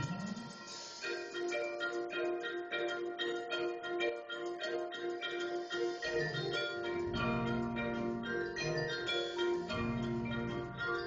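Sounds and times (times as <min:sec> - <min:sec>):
mallet percussion notes: 0:00.0 - 0:11.0.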